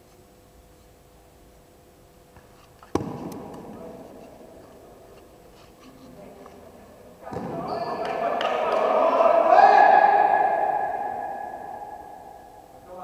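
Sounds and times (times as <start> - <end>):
voices shouting in echoing hall: 7.1 - 13.0.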